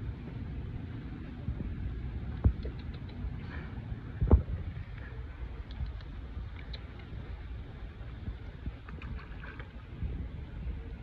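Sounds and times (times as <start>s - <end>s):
low water rumble: 0.0s - 11.0s
water splashes and drips: 4.3s - 10.0s.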